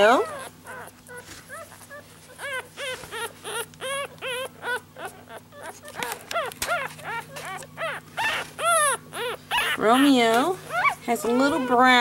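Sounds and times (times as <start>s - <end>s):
puppy crying in squeaks: 0.0s - 12.0s.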